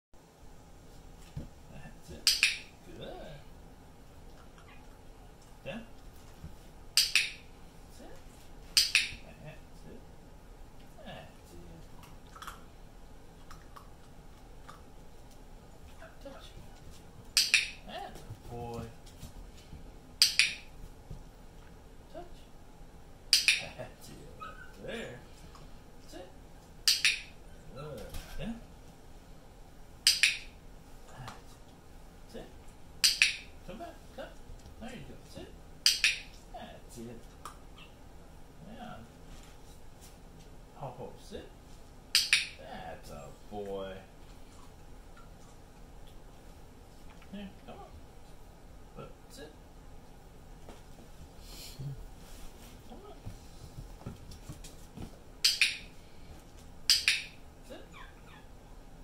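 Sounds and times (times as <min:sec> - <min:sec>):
dog-training clicker double clicks: 0:02.2 - 0:02.7, 0:07.0 - 0:07.4, 0:08.8 - 0:09.2, 0:17.4 - 0:17.8, 0:20.2 - 0:20.6, 0:23.3 - 0:23.7, 0:26.9 - 0:27.3, 0:30.1 - 0:30.5, 0:33.0 - 0:33.4, 0:35.8 - 0:36.3, 0:42.2 - 0:42.6, 0:56.9 - 0:57.3
puppy yipping: 0:24.4 - 0:24.8, 0:57.9 - 0:58.5.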